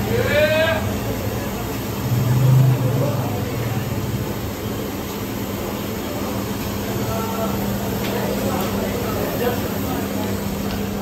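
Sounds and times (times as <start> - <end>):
gas burners roaring: 0.0 - 11.0.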